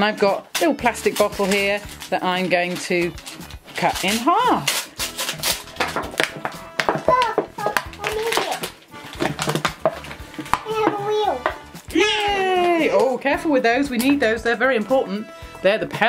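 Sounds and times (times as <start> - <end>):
background music: 0.0 - 16.0
packaging bag crinkling: 0.6 - 10.5
child's voice: 7.0 - 8.7, 10.6 - 11.6.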